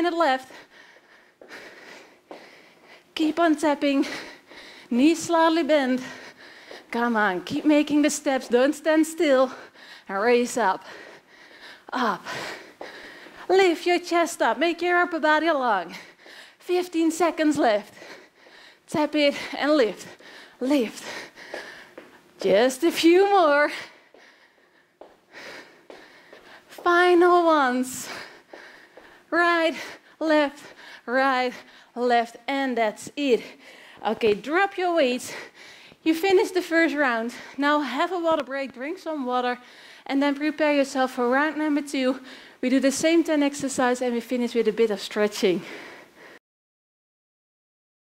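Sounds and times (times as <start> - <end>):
woman speaking: 0.0 - 0.5, 3.2 - 4.3, 4.9 - 6.2, 6.9 - 10.9, 13.5 - 16.0, 16.6 - 18.0, 18.9 - 21.2, 22.4 - 23.9, 26.7 - 28.2, 29.3 - 35.4, 36.0 - 45.7
woman breathing hard: 0.4 - 3.2, 4.0 - 5.0, 6.0 - 7.0, 9.4 - 10.1, 10.8 - 13.5, 15.8 - 16.6, 17.8 - 22.4, 23.7 - 26.8, 27.5 - 32.0, 33.4 - 34.0, 35.2 - 36.0, 39.6 - 40.1, 42.2 - 42.6, 45.6 - 46.4.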